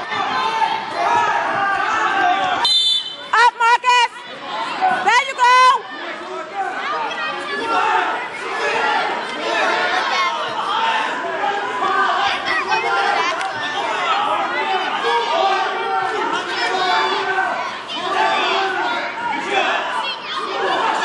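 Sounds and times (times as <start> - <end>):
crowd chatter in gym hall: 0.0 - 21.0.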